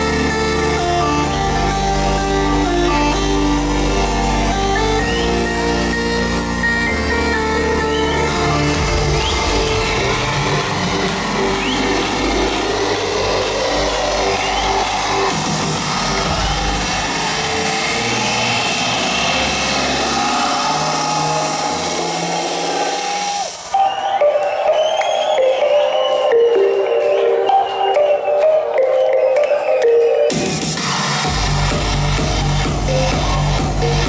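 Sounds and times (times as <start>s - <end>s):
electronic dance music: 0.0s - 34.0s.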